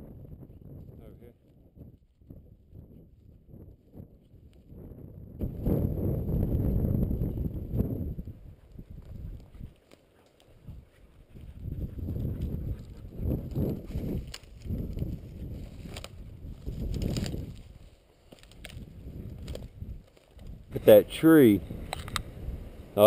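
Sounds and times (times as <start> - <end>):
wind buffeting microphone: 0.0 - 23.0
footsteps through dry grass: 8.2 - 20.7.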